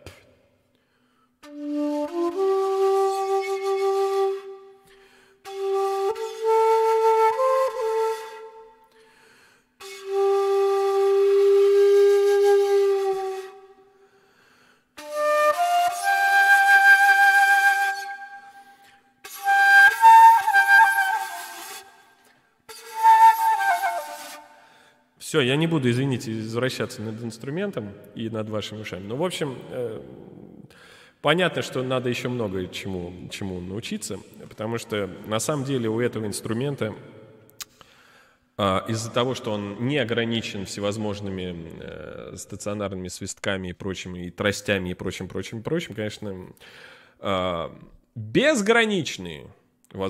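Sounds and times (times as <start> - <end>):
breathy bamboo flute notes: 1.4 - 25.0.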